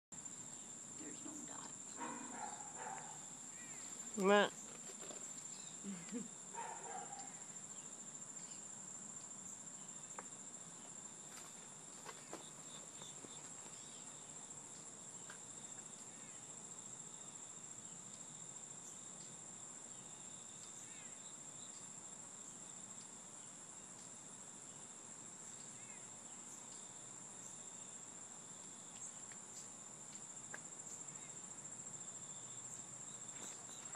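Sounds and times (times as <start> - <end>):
insect chorus trilling: 0.2 - 33.9.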